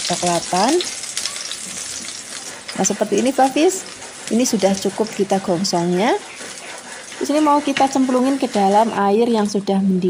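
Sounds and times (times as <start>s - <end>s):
garlic sizzling in hot oil: 0.0s - 10.0s
spoon stirring in wok: 1.0s - 9.3s.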